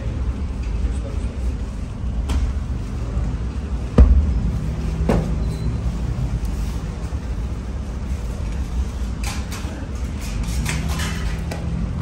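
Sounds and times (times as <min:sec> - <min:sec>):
steady low rumble: 0:02.6 - 0:08.9.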